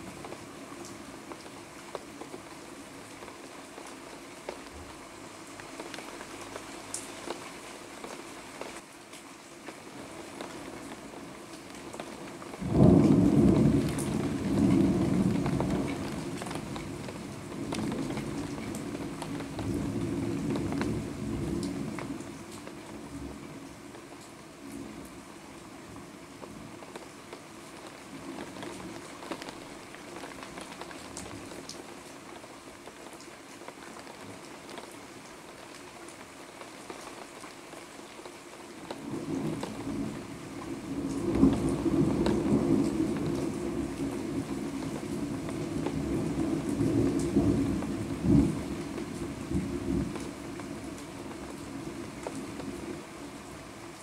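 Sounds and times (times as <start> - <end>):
steady rain: 0.0 - 54.0
thunder rumbling and cracking: 12.6 - 23.4, 39.0 - 52.9.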